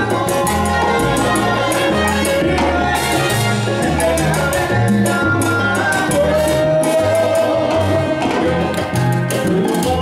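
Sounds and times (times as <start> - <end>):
bass line: 0.0 - 10.0
latin dance band playing: 0.0 - 10.0
percussion steady beat: 0.0 - 10.0.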